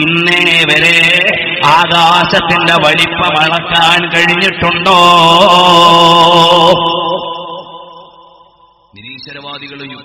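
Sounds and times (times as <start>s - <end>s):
man chanting through a pa: 0.0s - 7.2s.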